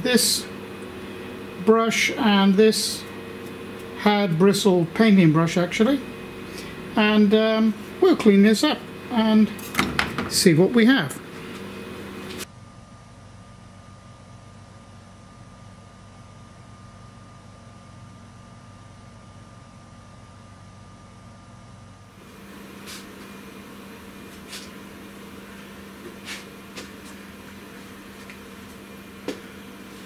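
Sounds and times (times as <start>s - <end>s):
deeper steady hum: 0.0s - 30.0s
workshop hum: 0.0s - 30.0s.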